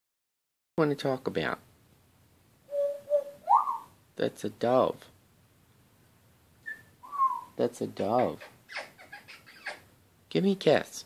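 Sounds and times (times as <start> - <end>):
parrot whistling: 2.7 - 4.0, 6.6 - 7.6.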